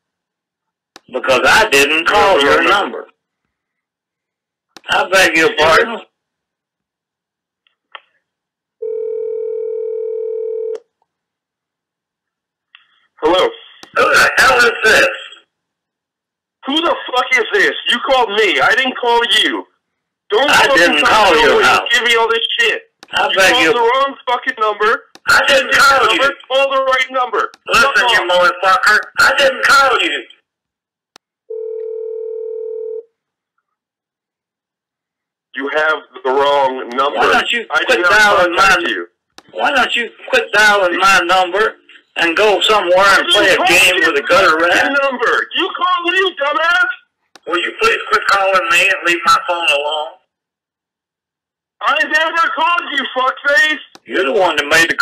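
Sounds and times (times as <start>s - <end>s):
dial tone: 8.8s - 10.8s, 31.5s - 33.1s.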